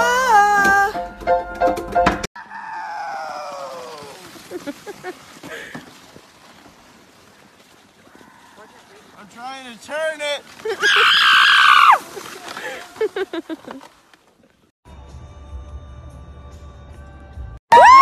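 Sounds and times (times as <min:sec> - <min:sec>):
person singing: 0:00.0 - 0:01.1
person yelling on a sled: 0:02.4 - 0:04.8, 0:10.7 - 0:13.2
drawn-out falling cry: 0:02.4 - 0:05.8, 0:10.7 - 0:13.1.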